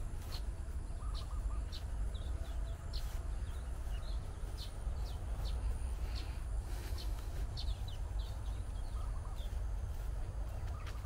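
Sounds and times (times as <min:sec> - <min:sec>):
birds calling: 0:00.0 - 0:11.0
steady low rumble: 0:00.0 - 0:11.0.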